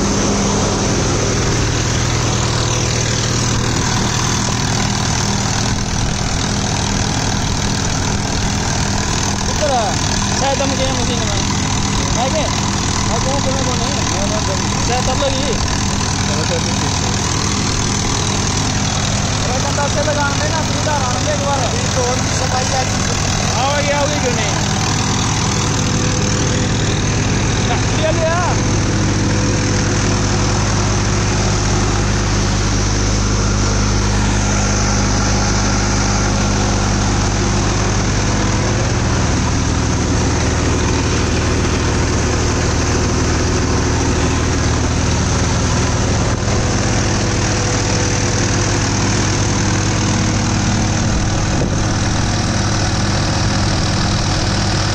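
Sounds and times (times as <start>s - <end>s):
thresher drum and fan running: 0.0s - 54.9s
tractor diesel engine running: 0.0s - 54.9s.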